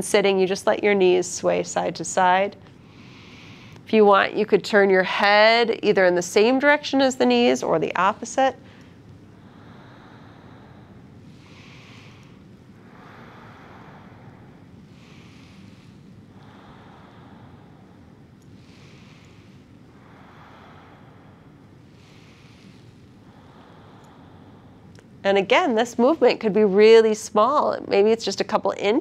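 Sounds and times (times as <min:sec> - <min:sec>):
slow rhythmic breathing: 0:00.0 - 0:28.2
low room hum: 0:00.0 - 0:29.0.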